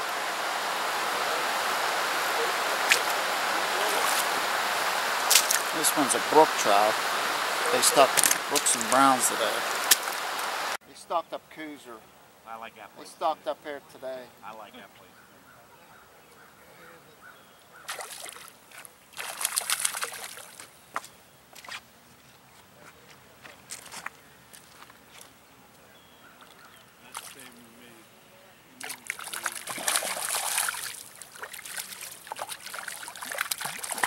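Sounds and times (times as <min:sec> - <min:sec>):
fish splashing in water: 0:01.4 - 0:10.4, 0:17.9 - 0:20.7, 0:28.8 - 0:34.0.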